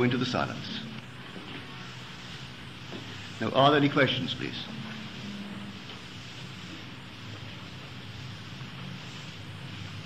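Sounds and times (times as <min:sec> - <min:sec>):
tape hiss: 0:00.0 - 0:10.0
low hum: 0:04.2 - 0:10.0.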